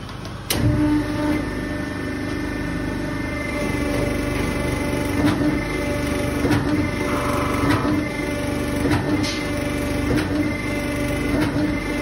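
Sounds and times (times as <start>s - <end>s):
machinery hum with whine: 0.0s - 12.0s.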